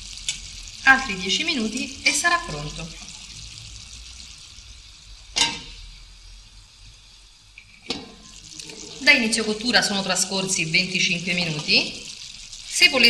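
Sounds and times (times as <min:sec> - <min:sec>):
chicken sizzling in frying pan: 0:00.0 - 0:13.0.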